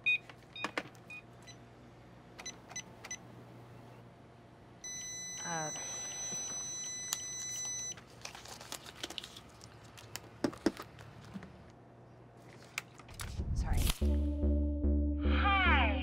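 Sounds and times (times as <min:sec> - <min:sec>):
steady high electronic tone: 0:14.0 - 0:16.0.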